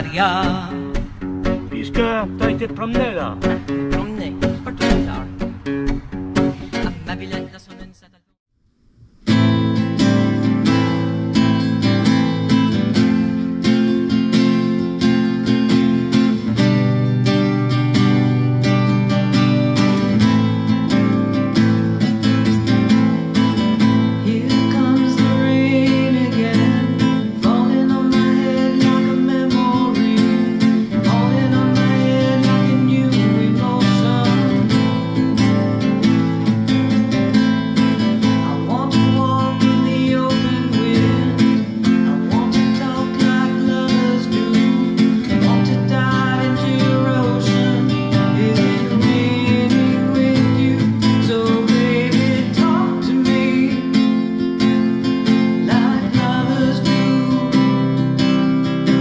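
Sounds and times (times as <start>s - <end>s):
acoustic guitar strumming: 0.0s - 8.2s, 9.1s - 59.0s.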